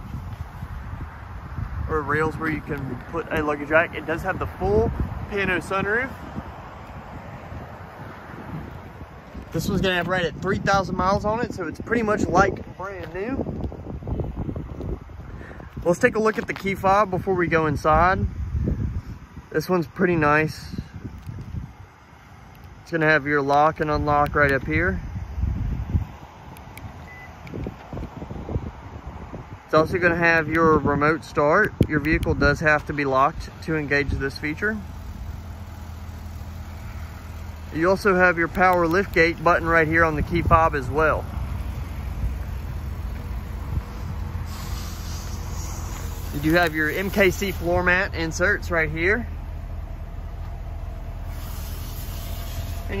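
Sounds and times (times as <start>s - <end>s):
wind rumbling on microphone: 0.0s - 53.0s
short faint beep: 27.0s - 27.4s.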